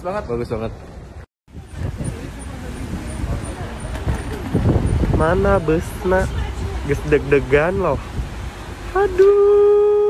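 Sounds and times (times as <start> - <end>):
steady traffic noise: 0.0 - 10.0
voices: 1.6 - 10.0.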